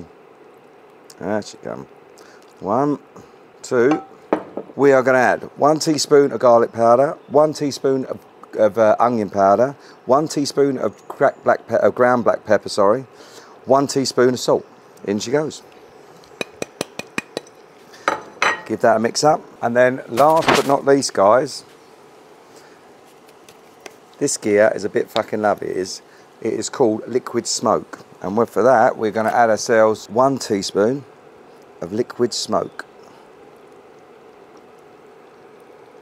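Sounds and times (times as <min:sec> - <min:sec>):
faint background hiss: 0:00.0 - 0:36.0.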